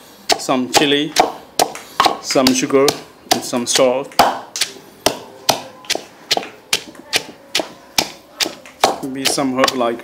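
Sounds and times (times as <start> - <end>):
wooden pestle pounding in mortar: 0.3 - 10.0.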